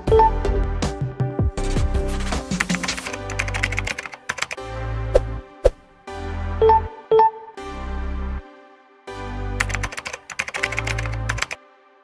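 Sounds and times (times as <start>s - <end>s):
keyboard typing clicks: 2.6s - 4.6s, 9.6s - 11.6s.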